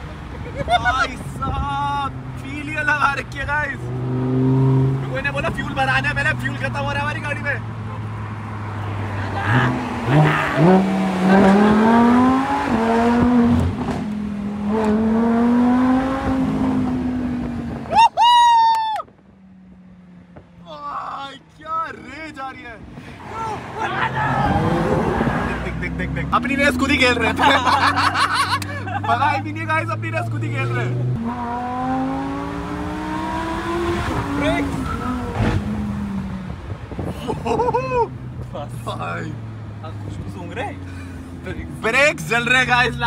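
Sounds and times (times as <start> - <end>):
car engine accelerating: 3.6 - 17.9, 23.3 - 43.0.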